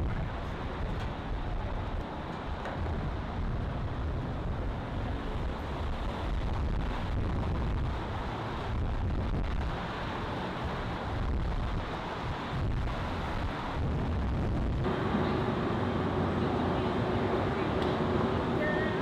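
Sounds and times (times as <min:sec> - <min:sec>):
wind buffeting microphone: 0:00.0 - 0:17.3.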